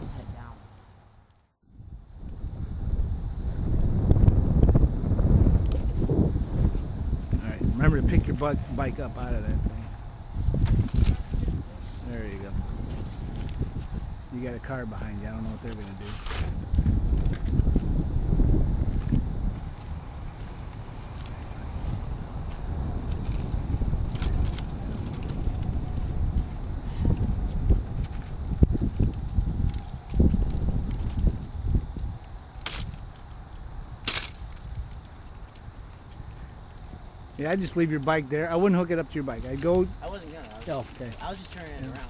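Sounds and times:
wind buffeting microphone: 1.7 - 42.0.

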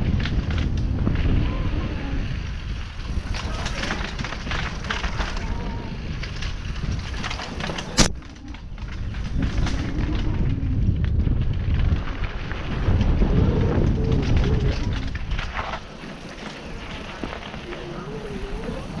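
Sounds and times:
bike rattling: 0.0 - 19.0
wind rumble on microphone: 0.0 - 19.0
tyres crunching on gravel: 2.5 - 19.0.

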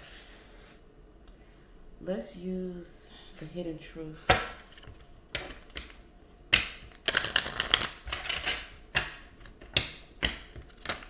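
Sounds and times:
deck of cards shuffled: 6.9 - 8.6.

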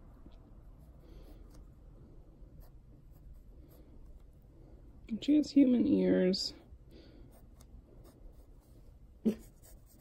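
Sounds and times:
pencil scratching on paper: 2.5 - 4.3, 7.2 - 10.0.

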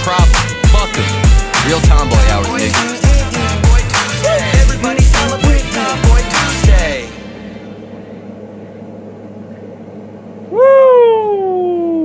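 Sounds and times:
low steady hum: 0.1 - 12.0.

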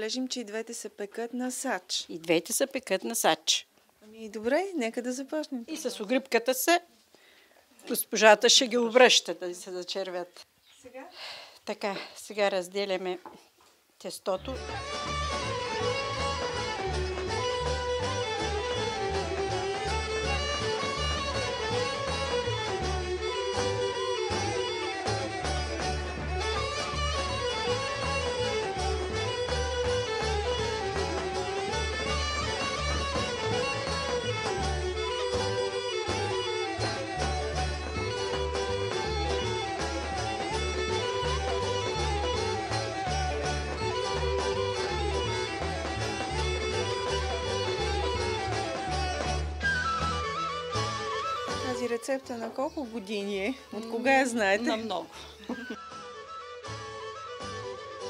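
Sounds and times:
traditional folk music: 14.4 - 58.0.

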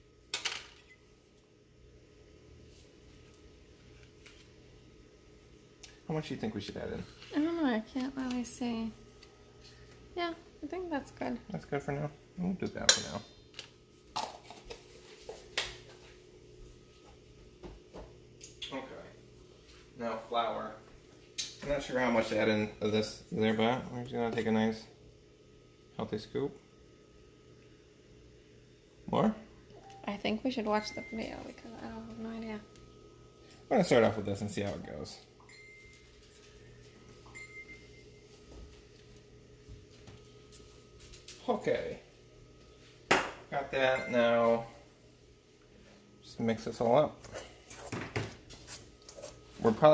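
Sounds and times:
faint steady hum: 0.0 - 49.9.

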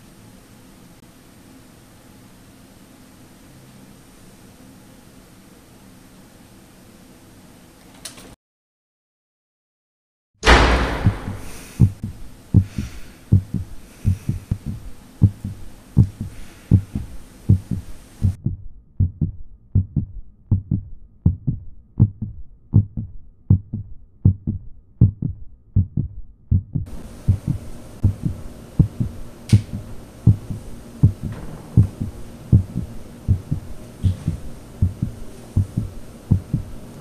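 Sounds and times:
heartbeat double thump: 10.4 - 36.8.

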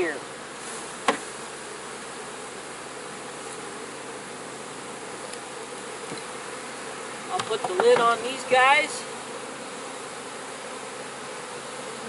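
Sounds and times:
bees buzzing: 0.0 - 12.0.

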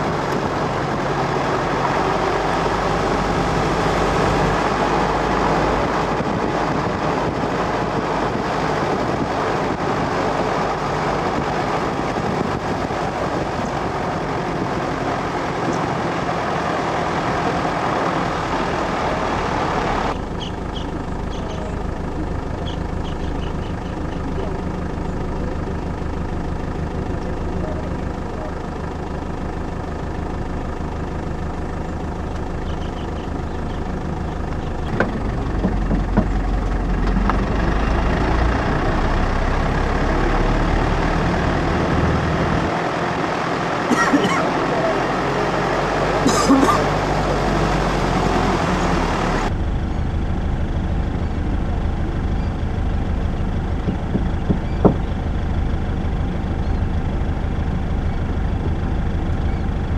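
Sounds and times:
engine idling: 0.0 - 59.9
engine rumbling pulling away: 0.0 - 59.9
wind and road noise: 0.0 - 59.9.

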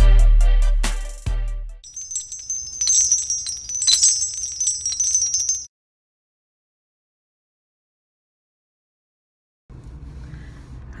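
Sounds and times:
high shimmering chimes: 1.9 - 5.7.

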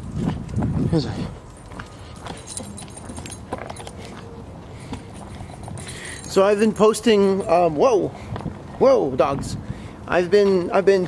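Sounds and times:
dog tags and leash clips jingling: 0.0 - 7.7.

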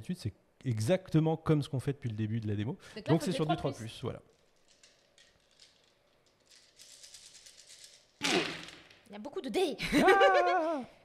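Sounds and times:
dice clattering on a table: 4.3 - 9.1
dice rattling in a hand: 4.3 - 9.1.

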